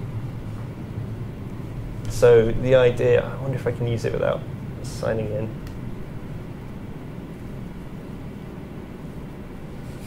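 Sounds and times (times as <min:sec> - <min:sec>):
low rumble of room noise: 0:00.0 - 0:10.0.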